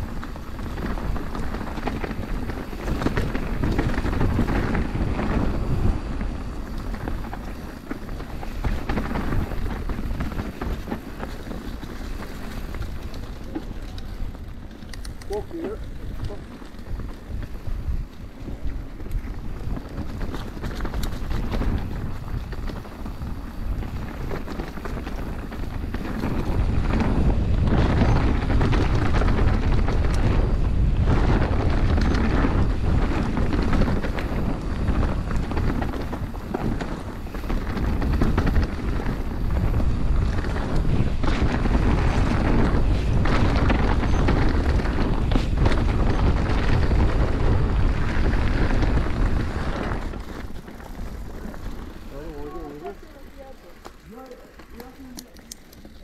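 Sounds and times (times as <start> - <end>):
bike chassis clatter: 0.0 - 56.0
bike tyre rumble: 0.0 - 56.0
wind noise on microphone: 0.0 - 56.0.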